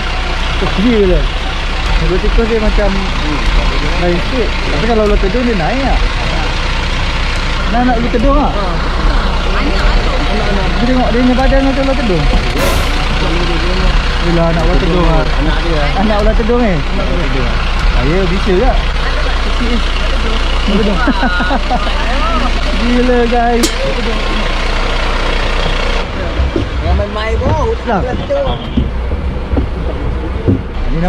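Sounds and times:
fire engine idling: 0.0s - 31.0s
voices: 0.0s - 31.0s.

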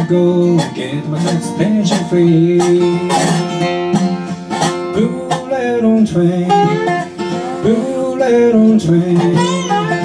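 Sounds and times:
acoustic guitar strumming: 0.0s - 10.0s
lap slide guitar notes: 0.0s - 10.0s.

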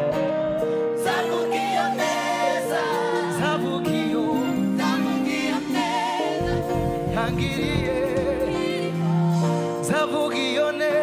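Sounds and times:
bass: 0.0s - 2.1s, 2.8s - 11.0s
person singing with vibrato: 0.0s - 11.0s.

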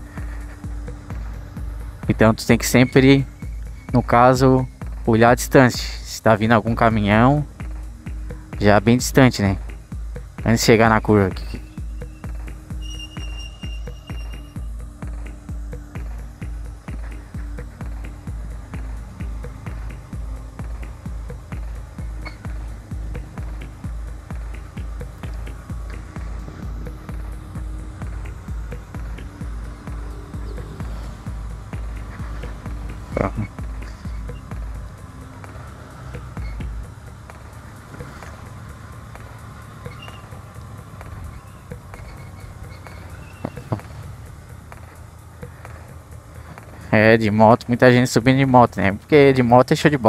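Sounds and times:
kick drum beat: 0.0s - 2.2s, 7.4s - 10.6s, 11.4s - 37.5s
electronic dance music: 10.4s - 37.8s.

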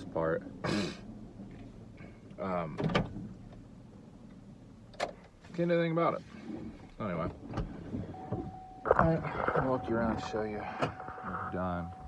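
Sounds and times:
faint vehicle cab hum: 0.0s - 12.0s.

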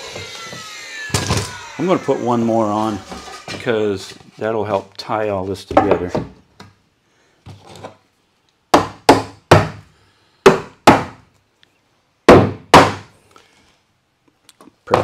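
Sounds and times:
hammer striking wooden board: 8.7s - 9.8s, 10.5s - 11.2s, 12.3s - 13.1s.

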